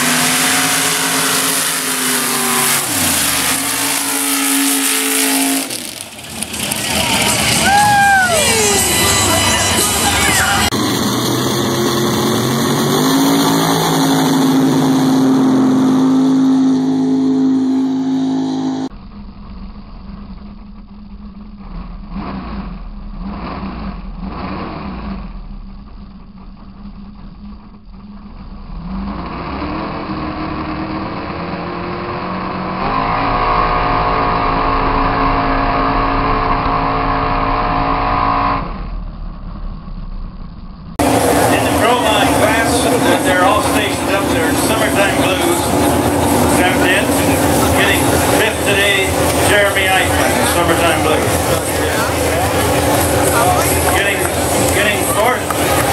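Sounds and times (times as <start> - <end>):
racing engine revving: 0.0 - 18.9, 21.6 - 26.1, 28.4 - 55.9.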